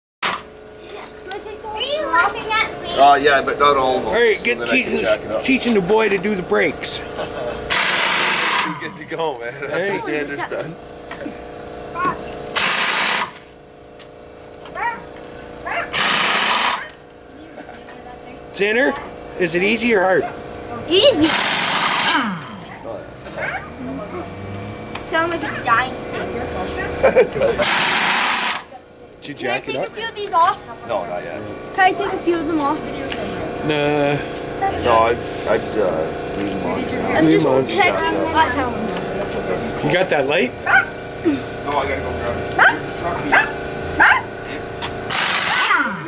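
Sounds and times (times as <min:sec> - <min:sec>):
power tool motor whine: 0:00.2 - 0:00.6, 0:07.2 - 0:17.1, 0:18.4 - 0:28.8, 0:31.6 - 0:46.0
steady hum: 0:00.2 - 0:46.0
voices talking: 0:00.7 - 0:12.6, 0:14.4 - 0:46.0.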